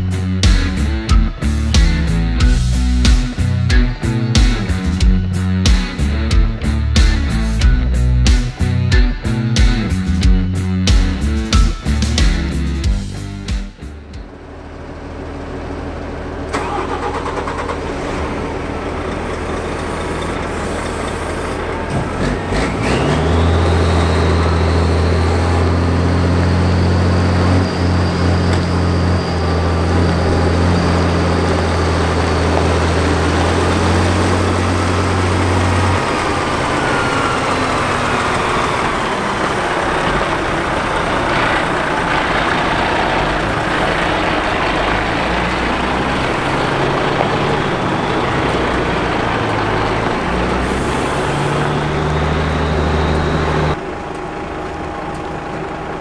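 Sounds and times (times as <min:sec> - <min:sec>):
diesel truck engine running: 0:00.0 - 0:56.0
high engine whine: 0:00.0 - 0:56.0.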